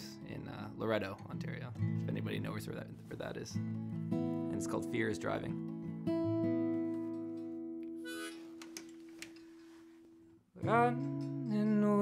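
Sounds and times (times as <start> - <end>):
harmonica: 8.0 - 8.6.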